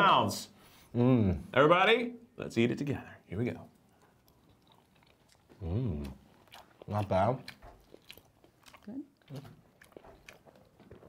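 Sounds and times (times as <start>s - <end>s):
person chewing food: 3.8s - 11.0s
person murmuring: 5.6s - 6.2s.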